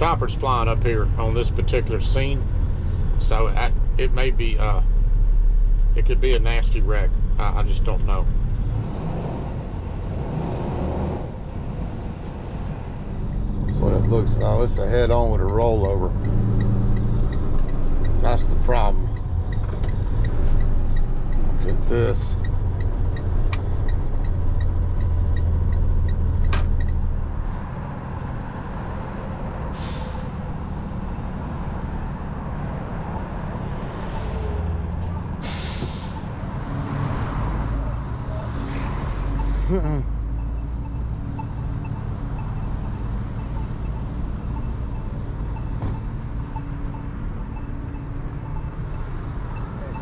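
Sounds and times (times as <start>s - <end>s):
street traffic: 0.0s - 50.0s
air brakes hissing: 29.7s - 30.5s, 35.4s - 36.3s.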